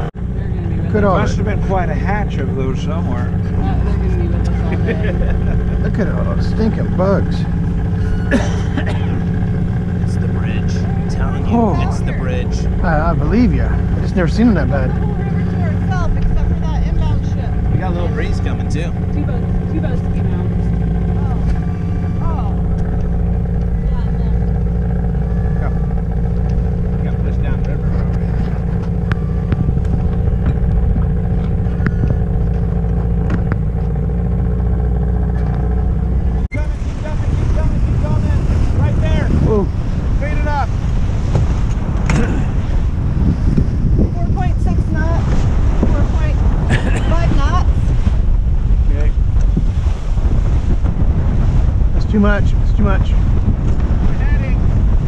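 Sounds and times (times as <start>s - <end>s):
boat motor running: 0.0s - 55.0s
water rushing past hull: 0.0s - 55.0s
wind buffeting microphone: 0.0s - 55.0s.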